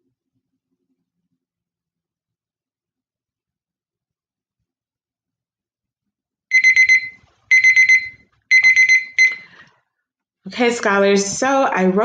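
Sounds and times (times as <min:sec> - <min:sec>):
timer beeping: 0:06.5 - 0:09.6.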